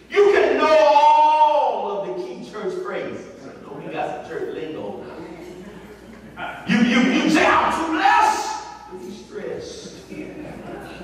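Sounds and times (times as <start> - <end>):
man preaching in a large hall: 0.0 - 5.2, 6.4 - 10.2.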